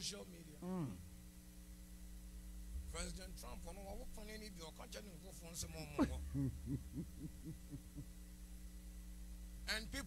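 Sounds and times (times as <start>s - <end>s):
low electrical hum: 0.0s - 10.0s
person humming murmurs: 0.6s - 1.0s, 6.0s - 8.1s.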